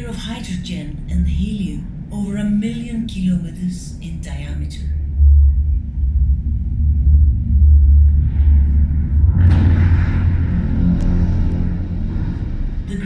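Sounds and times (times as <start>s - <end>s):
deep steady rumbling: 0.0s - 13.0s
rushing whoosh: 4.9s - 12.9s.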